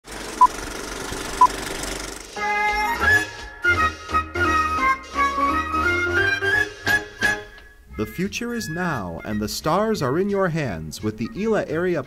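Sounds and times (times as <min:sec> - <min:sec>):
film projector crackling: 0:00.1 - 0:02.4.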